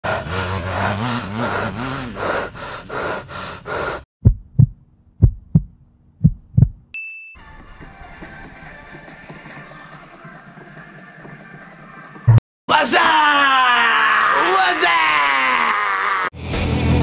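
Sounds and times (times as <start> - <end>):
heartbeat thumps: 4.2 - 6.9.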